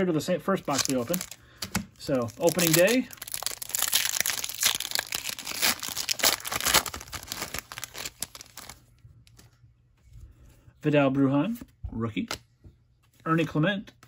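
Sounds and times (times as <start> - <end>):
foil wrapper tearing and crinkling: 0.6 - 1.4, 2.1 - 8.8.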